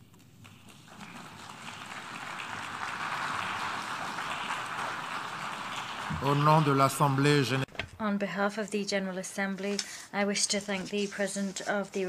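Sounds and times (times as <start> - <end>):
audience applauding: 0.4 - 7.7.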